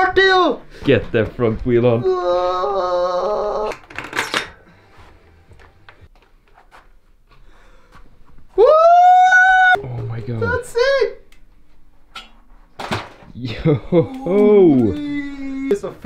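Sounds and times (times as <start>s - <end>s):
person crying out: 2.0s - 3.8s, 8.6s - 9.8s, 13.9s - 15.7s
person whooping: 2.0s - 3.8s, 8.6s - 9.8s, 13.9s - 15.8s.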